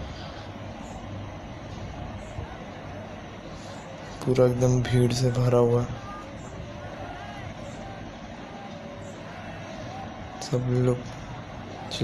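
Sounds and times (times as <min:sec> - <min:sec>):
crowd hubbub: 0:00.0 - 0:04.5, 0:05.2 - 0:12.0.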